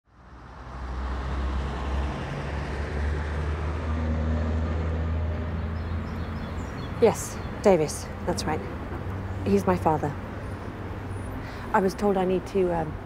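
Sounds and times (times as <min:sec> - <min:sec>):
road noise: 0:00.0 - 0:13.0
vehicle engines rumbling: 0:00.1 - 0:13.0.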